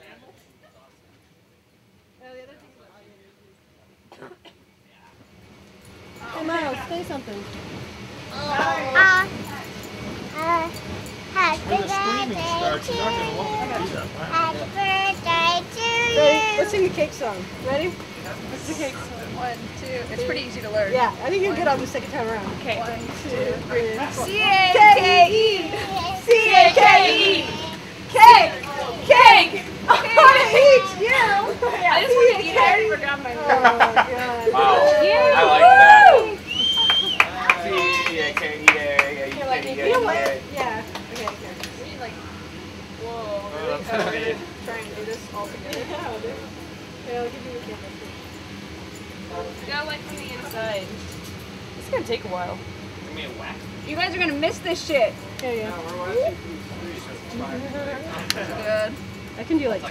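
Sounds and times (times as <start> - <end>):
people talking: 6.2 - 7.6, 8.3 - 42.4, 43.0 - 48.4, 49.3 - 51.1, 51.8 - 59.9.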